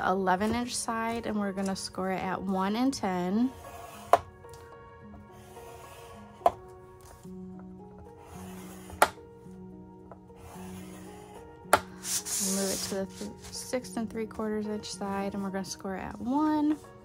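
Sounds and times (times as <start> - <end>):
background music with held notes: 0.0 - 17.0
bone folder scraping scoring board: 3.5 - 4.3, 8.2 - 9.2, 10.4 - 13.6.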